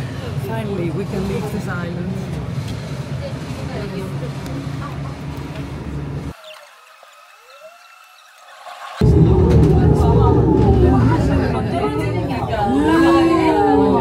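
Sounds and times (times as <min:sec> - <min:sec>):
background voices: 0:09.0 - 0:14.0
low rumble of machinery: 0:09.0 - 0:14.0.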